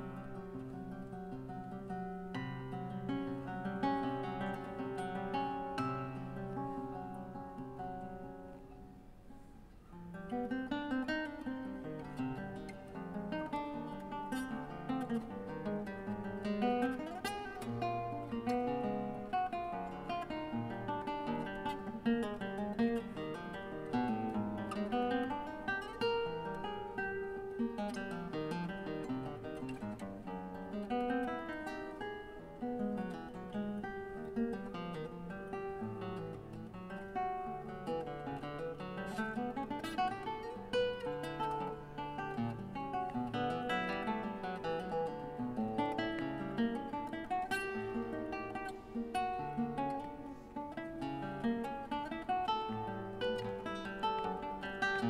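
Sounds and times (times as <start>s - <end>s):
classical guitar fingerstyle: 0.0s - 55.0s.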